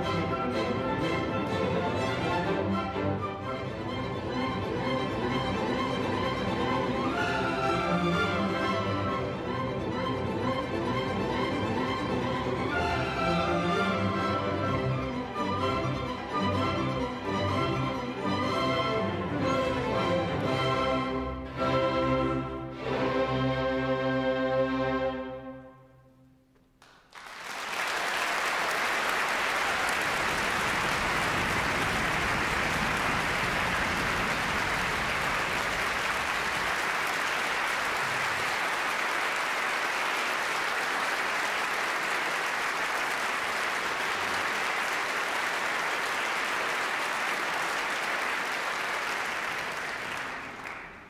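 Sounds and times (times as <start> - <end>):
audience applauding: 26.7 - 51.0.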